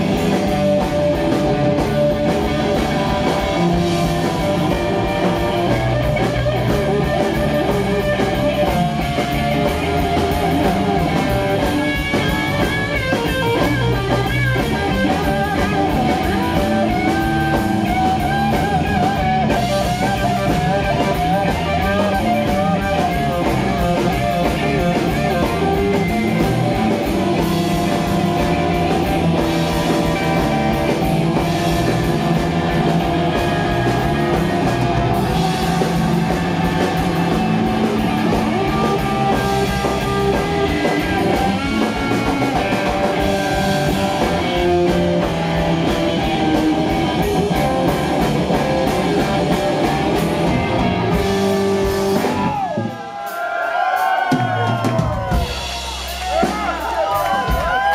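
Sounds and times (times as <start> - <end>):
electric guitar solo with bent notes: 0.0 - 52.9
bass guitar: 0.0 - 57.9
drum kit: 0.0 - 57.9.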